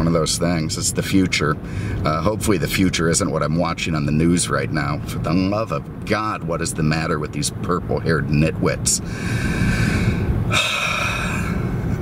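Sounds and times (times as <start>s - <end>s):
road rumble inside car: 0.0s - 12.0s
heavy sigh: 9.0s - 12.0s
person breathing in: 9.0s - 12.0s.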